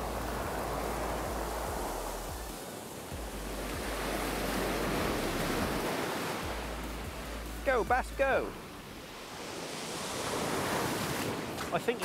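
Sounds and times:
surf breaking on beach: 0.0 - 12.0.

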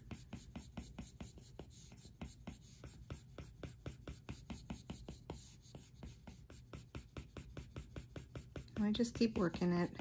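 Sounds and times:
stylus rubbing on glass screen: 0.0 - 10.0.

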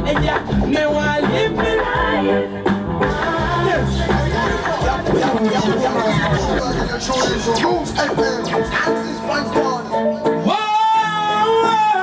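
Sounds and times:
voices talking and chattering: 4.1 - 10.0.

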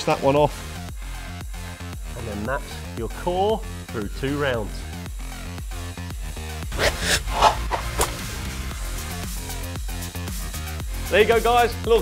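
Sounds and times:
whooshing sweeps: 6.7 - 8.3.

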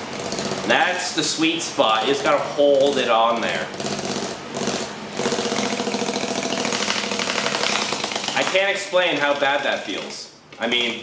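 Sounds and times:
fan motor hum: 0.0 - 11.0.

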